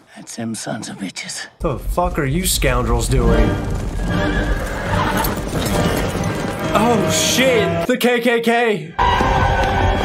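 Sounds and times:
hooves clattering: 1.6s - 7.7s
dramatic film music: 1.6s - 7.9s, 9.0s - 10.0s
horse whinnying: 4.1s - 6.8s.

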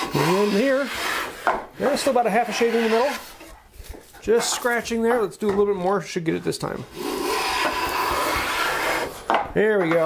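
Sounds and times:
hand plane shearing wood: 0.0s - 3.5s, 6.9s - 9.3s.

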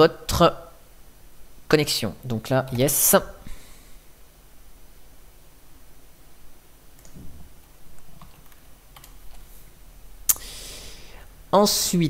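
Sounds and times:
room hiss: 0.0s - 12.0s
keyboard clicks: 8.0s - 9.4s.

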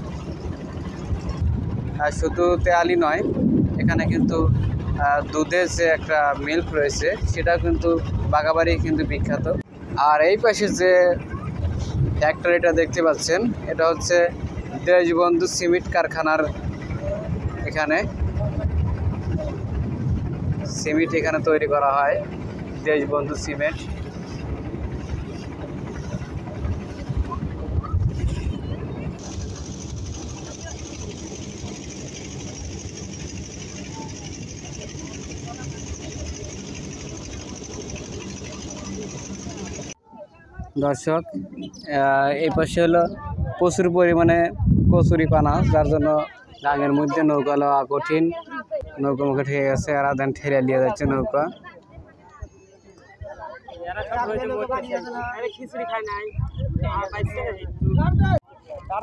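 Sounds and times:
steady low rumble: 0.0s - 40.0s, 41.7s - 46.0s.

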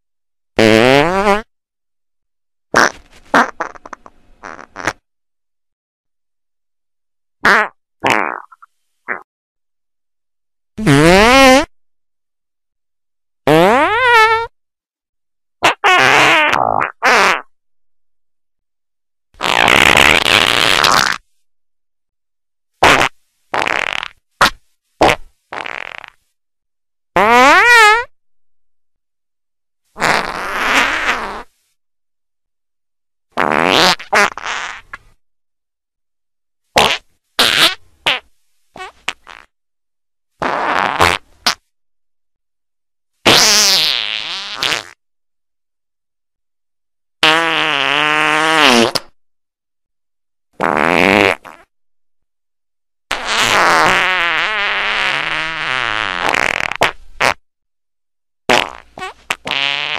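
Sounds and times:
short fart sounds: 0.6s - 1.5s, 2.7s - 5.1s, 7.4s - 9.3s, 10.8s - 11.7s, 13.5s - 14.6s, 15.6s - 17.5s, 19.4s - 21.2s, 22.8s - 26.2s, 27.2s - 28.2s, 30.0s - 31.6s, 33.4s - 35.2s, 36.8s - 39.5s, 40.4s - 41.7s, 43.2s - 45.0s, 47.2s - 49.2s, 50.6s - 51.7s, 53.1s - 57.4s, 58.5s - 59.9s.

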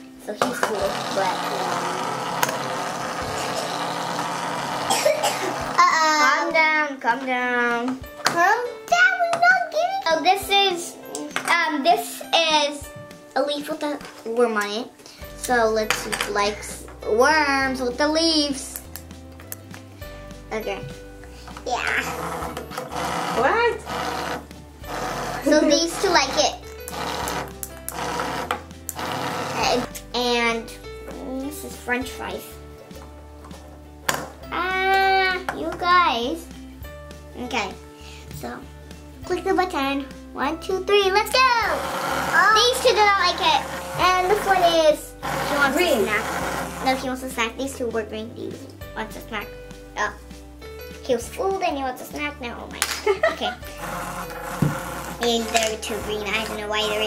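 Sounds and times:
small toy motors buzzing: 0.8s - 5.8s, 21.9s - 29.9s, 41.6s - 47.1s, 53.7s - 57.0s
child laughing: 5.0s - 6.3s, 25.4s - 26.0s, 53.0s - 53.7s.

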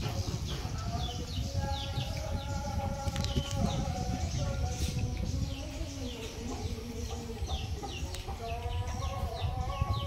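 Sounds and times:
chickens chirping: 0.0s - 10.0s.

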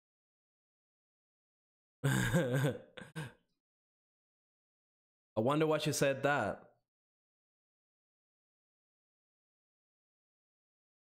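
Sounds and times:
man laughing: 2.0s - 3.4s.

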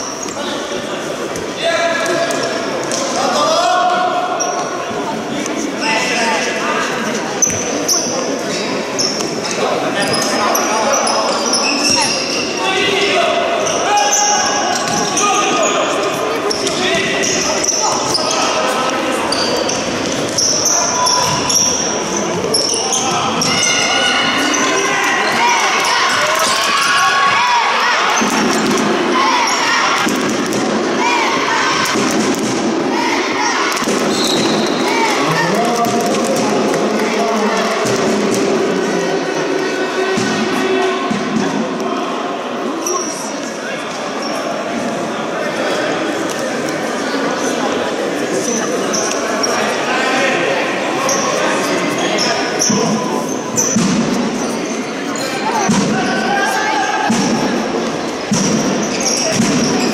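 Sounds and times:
players and spectators calling out: 0.0s - 59.9s.

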